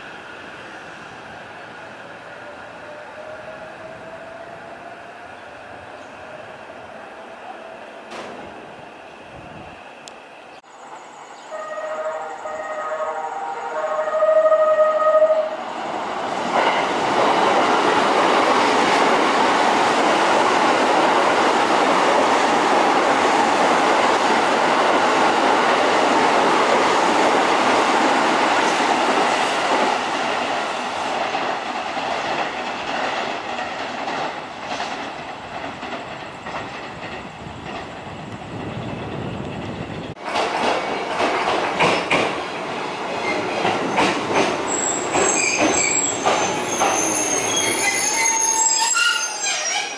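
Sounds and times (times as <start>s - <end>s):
train at platform: 0.0s - 49.9s
train rushing past: 0.0s - 49.9s
wheel or brake squeals: 44.7s - 49.9s.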